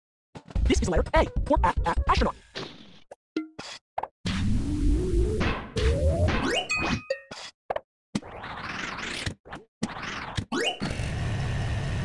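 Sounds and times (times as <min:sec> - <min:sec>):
cartoon music: 0:01.0 - 0:02.4.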